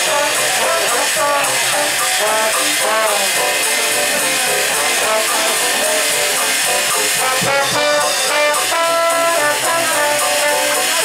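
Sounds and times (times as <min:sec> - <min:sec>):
jazz band playing: 0:00.0 - 0:11.0
steady cymbal rhythm: 0:00.0 - 0:11.0.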